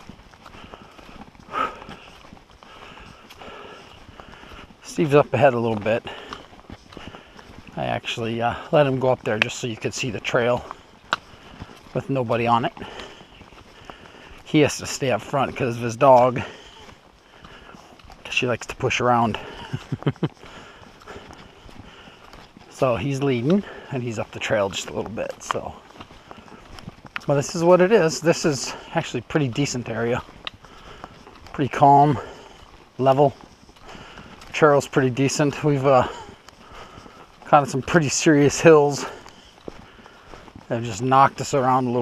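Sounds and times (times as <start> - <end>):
footsteps on a dirt trail: 0.0 - 42.0
man laughing: 19.3 - 20.6.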